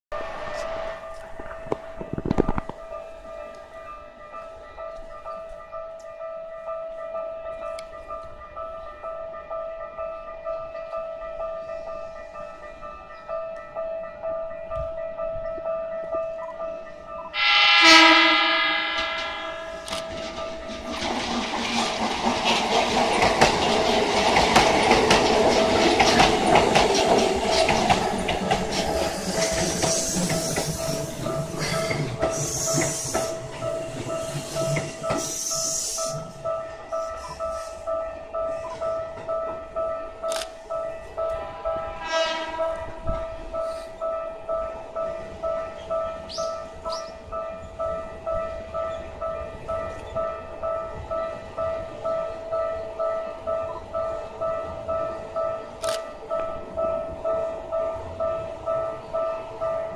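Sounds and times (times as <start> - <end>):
train rumble and wheel clatter: 0.1 - 59.9
train wheels squealing: 17.2 - 23.7, 24.8 - 39.1, 41.6 - 44.2, 45.4 - 51.6
train horn blast: 17.3 - 20.8, 41.4 - 43.9.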